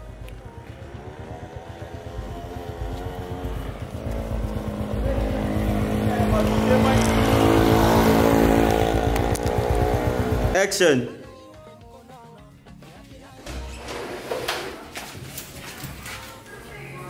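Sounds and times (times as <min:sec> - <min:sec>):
vehicle engine rumbling: 0:00.0 - 0:10.6.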